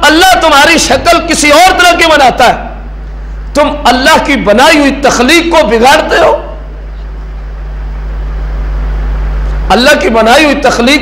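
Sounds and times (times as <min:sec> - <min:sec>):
faint higher hum: 0:00.0 - 0:11.0
low electrical hum: 0:00.0 - 0:11.0.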